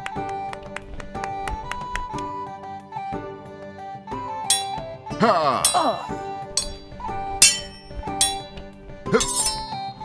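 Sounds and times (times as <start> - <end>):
background music: 0.0 - 10.0
sword clashes: 4.5 - 5.0, 5.6 - 10.0.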